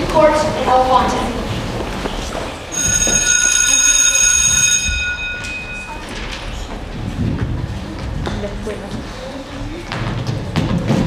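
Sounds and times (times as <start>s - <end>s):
school bell ringing: 2.7s - 6.9s.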